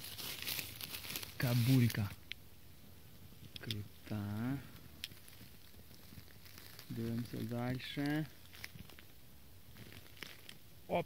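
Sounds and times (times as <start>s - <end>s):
faint rustles and soft ticks: 0.0s - 2.4s, 3.2s - 10.7s.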